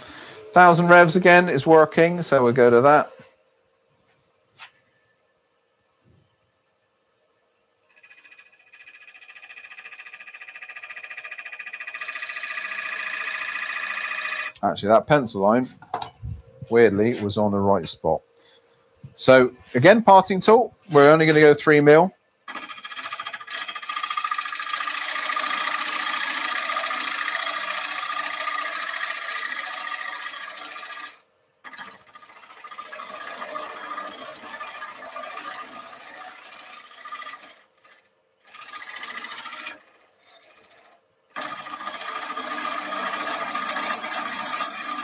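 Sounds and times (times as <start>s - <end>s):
lathe tool scraping wood: 7.9s - 14.6s, 22.5s - 45.0s.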